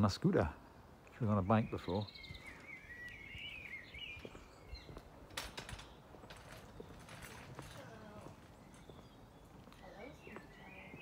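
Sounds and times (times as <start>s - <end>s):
small bird singing: 1.1s - 11.0s.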